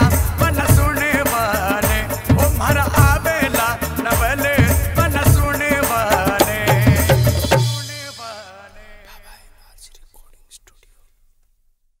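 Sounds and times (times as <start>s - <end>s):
person whispering: 9.0s - 11.3s.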